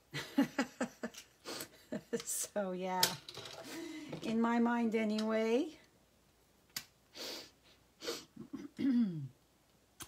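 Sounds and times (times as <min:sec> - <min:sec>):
woman clearing her throat: 0:08.4 - 0:09.4.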